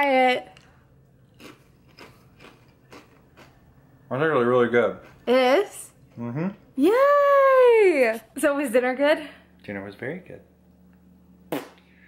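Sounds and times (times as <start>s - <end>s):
person chewing chip crunches: 1.2s - 3.6s.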